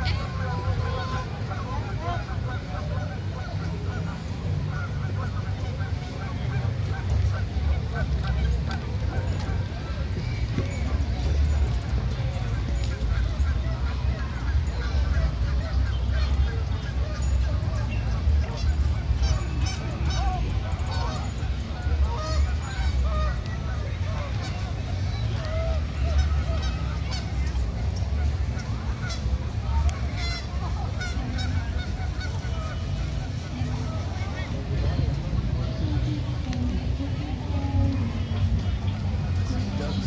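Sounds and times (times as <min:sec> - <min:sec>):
geese honking: 0:00.0 - 0:40.0
steady low rumble: 0:00.0 - 0:40.0.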